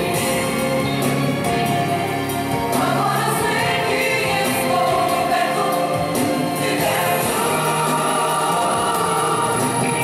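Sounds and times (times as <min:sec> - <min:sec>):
choir singing gospel music: 0:00.0 - 0:10.0.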